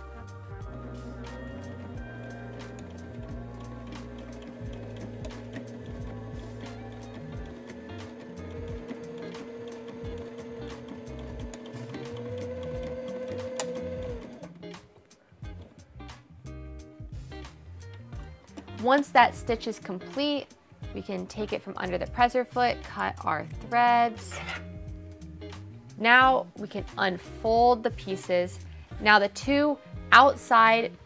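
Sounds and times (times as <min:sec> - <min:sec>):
background music: 0:00.0 - 0:31.0
sewing machine stitching: 0:00.9 - 0:14.6.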